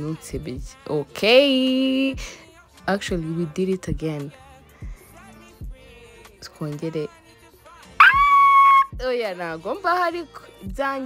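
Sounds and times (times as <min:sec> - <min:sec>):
woman's high-pitched squeal: 0:08.0 - 0:09.0.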